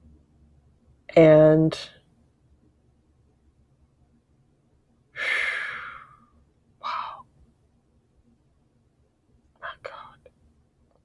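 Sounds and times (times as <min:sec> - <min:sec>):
person sighing: 0:05.2 - 0:06.2, 0:06.8 - 0:07.2
short breath: 0:05.2 - 0:06.2.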